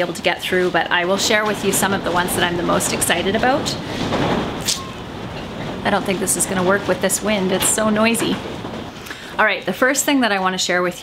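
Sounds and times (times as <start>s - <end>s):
wind buffeting microphone: 0.0s - 9.4s.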